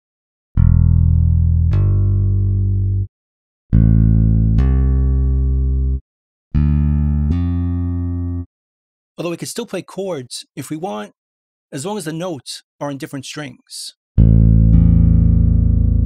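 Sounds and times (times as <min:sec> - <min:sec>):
electric bass phrases: 0:00.6 - 0:03.1, 0:03.7 - 0:06.0, 0:06.6 - 0:08.5, 0:14.2 - 0:16.0.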